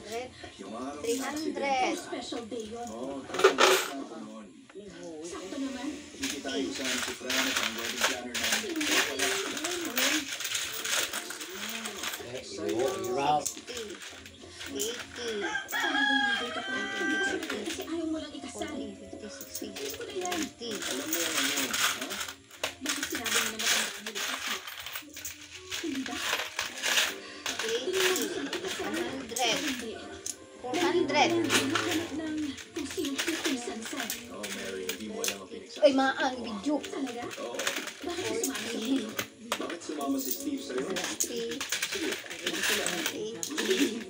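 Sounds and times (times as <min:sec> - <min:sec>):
conversation: 0:00.0 - 0:44.0
coins clinking: 0:00.9 - 0:04.1, 0:05.4 - 0:44.0
rooster crowing: 0:15.4 - 0:17.5.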